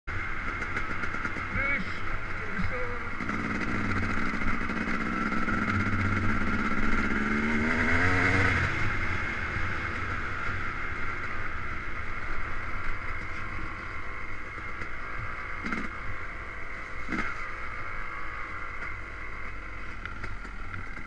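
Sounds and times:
dirt bike engine revving: 0:00.3 - 0:11.2.

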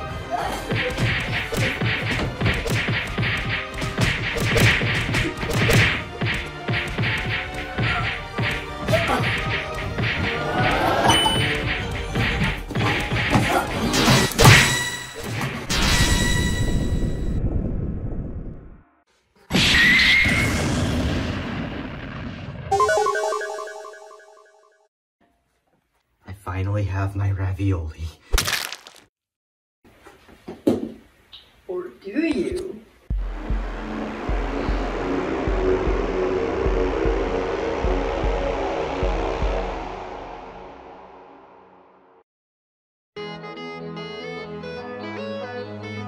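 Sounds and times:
punch and whack impacts: 0:00.7 - 0:10.3
loud explosion: 0:20.3 - 0:22.7.

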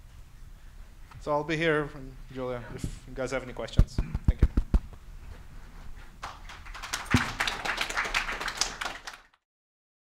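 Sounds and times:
audience applauding: 0:06.2 - 0:09.4.

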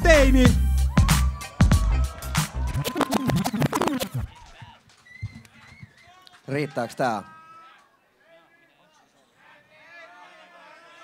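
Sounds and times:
hip-hop beat: 0:00.0 - 0:04.4
record scratching: 0:02.3 - 0:04.6.

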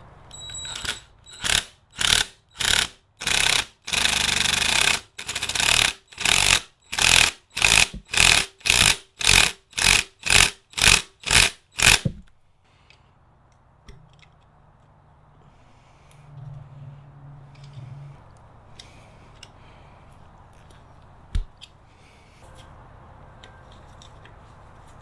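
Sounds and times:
cordless impact driver bursts: 0:00.6 - 0:12.1.

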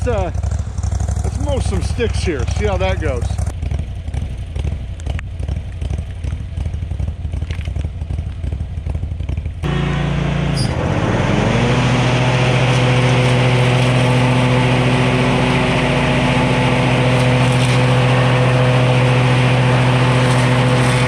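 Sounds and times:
mower engine running: 0:00.0 - 0:21.0.

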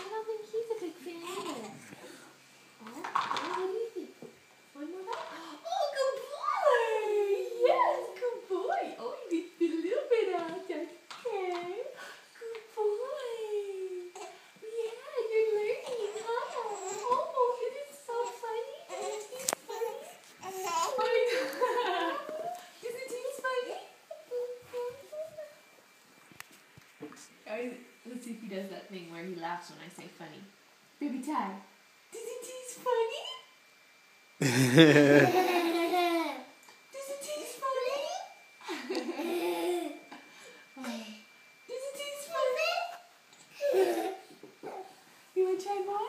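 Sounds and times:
baby babbling and cooing: 0:01.2 - 0:01.9, 0:14.1 - 0:14.4, 0:15.8 - 0:17.2, 0:18.2 - 0:21.0
baby cooing and fussing: 0:15.8 - 0:17.2.

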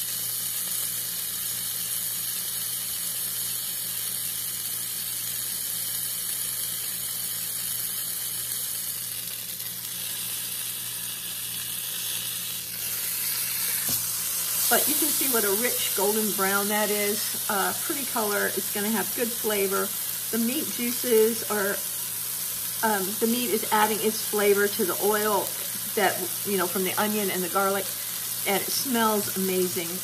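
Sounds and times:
meat sizzling in hot oil: 0:00.0 - 0:30.0.

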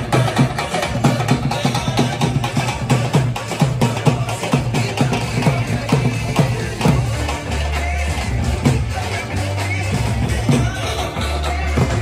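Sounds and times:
drums beaten with sticks: 0:00.0 - 0:12.0.

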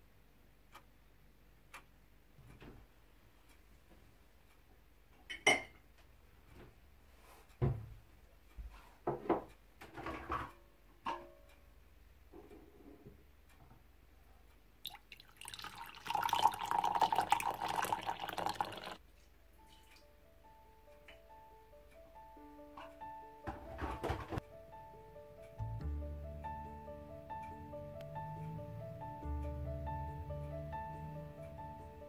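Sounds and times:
kitchenware clinking: 0:05.3 - 0:05.8
coffee pouring into a mug: 0:14.8 - 0:19.0
soft piano music: 0:19.4 - 0:32.0.

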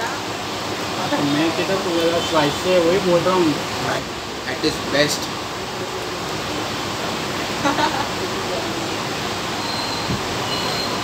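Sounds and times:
person laughing: 0:07.6 - 0:08.3.

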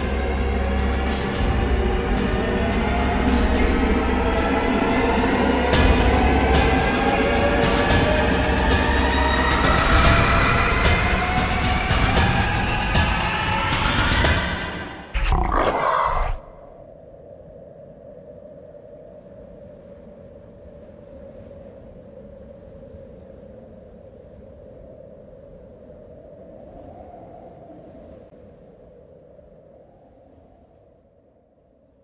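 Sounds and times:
low ominous drone: 0:00.0 - 0:16.8
animal-like roar: 0:15.1 - 0:16.8.

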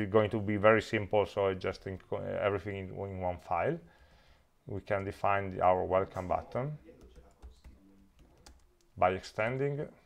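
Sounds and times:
keyboard typing: 0:06.8 - 0:09.0.

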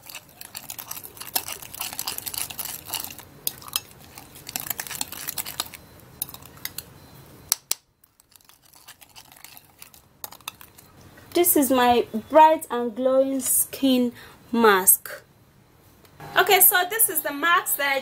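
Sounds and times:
spoon clinking against glass: 0:00.0 - 0:06.9
spoon scraping glass bowl: 0:00.0 - 0:06.9, 0:08.0 - 0:11.0.

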